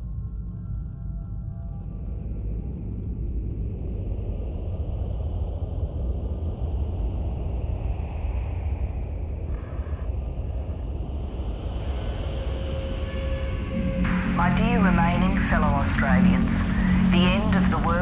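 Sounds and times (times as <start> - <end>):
deep steady rumble: 0.0 - 18.0
airy high drifting tone: 11.8 - 18.0.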